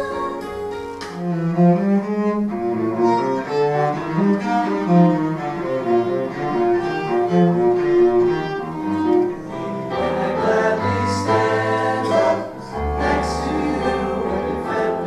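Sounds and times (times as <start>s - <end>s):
violin and cello duet: 0.0s - 15.0s
male voices singing together: 10.0s - 15.0s.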